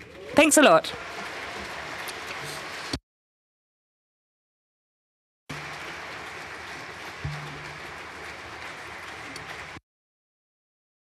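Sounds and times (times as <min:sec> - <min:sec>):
audience applause: 0:00.0 - 0:03.0, 0:05.5 - 0:09.8.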